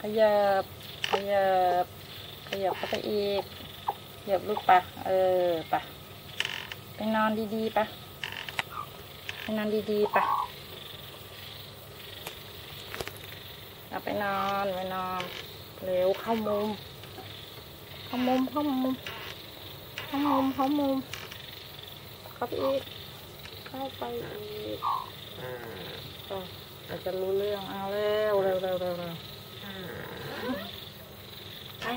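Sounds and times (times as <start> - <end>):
hen call: 9.9 - 10.6, 23.7 - 25.8.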